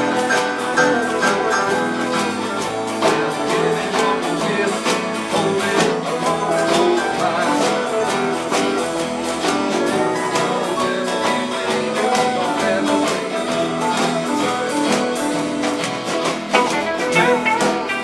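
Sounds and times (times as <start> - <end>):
small band playing: 0.0 - 18.0
washboard percussion: 0.0 - 18.0.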